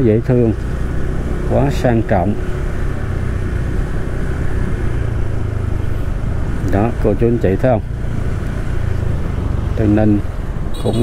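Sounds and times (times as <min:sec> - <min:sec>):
motorbike road noise: 0:00.0 - 0:11.0.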